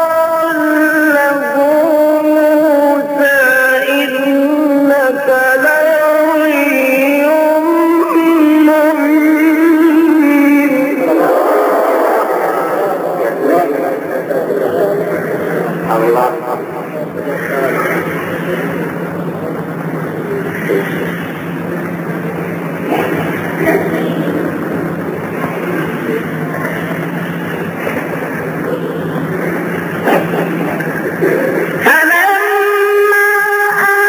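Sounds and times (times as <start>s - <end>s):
indistinct voices: 0.0s - 34.0s
steady low hum: 0.0s - 34.0s.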